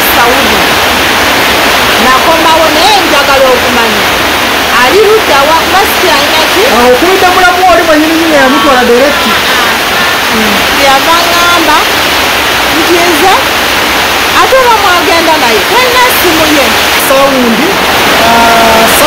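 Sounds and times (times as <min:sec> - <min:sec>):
person talking: 0:00.0 - 0:00.8, 0:02.0 - 0:04.1, 0:04.7 - 0:11.9, 0:12.7 - 0:13.5, 0:14.4 - 0:19.0
loud steady rushing hiss: 0:00.0 - 0:19.0.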